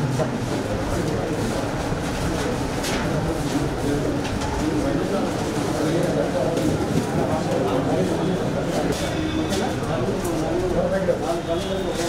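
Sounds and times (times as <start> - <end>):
murmur of crowd talking: 0.0 - 12.0.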